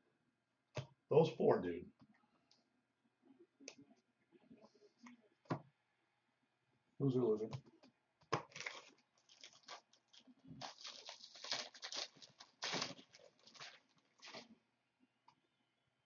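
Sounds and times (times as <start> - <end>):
wrapper tearing and crumpling: 8.4 - 14.5.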